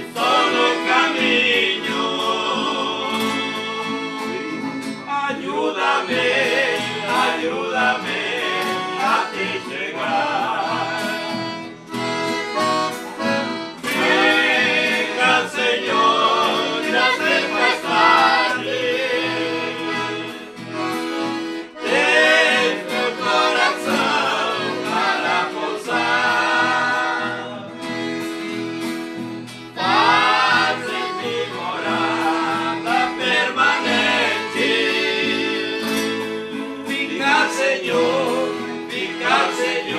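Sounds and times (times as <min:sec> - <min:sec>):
men singing a hymn in harmony: 0:00.0 - 0:04.2, 0:05.1 - 0:11.3, 0:13.8 - 0:20.8, 0:21.8 - 0:27.8, 0:29.8 - 0:39.9
piano accordion: 0:00.0 - 0:39.9
strummed acoustic guitars: 0:00.0 - 0:39.9.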